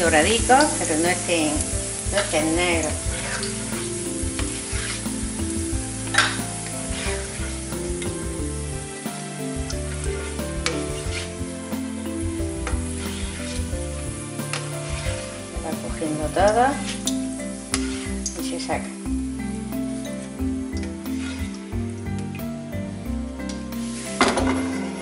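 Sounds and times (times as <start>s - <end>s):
spatula scraping a pan: 0.0s - 18.6s, 21.0s - 21.6s
garlic sizzling in oil: 0.0s - 25.0s.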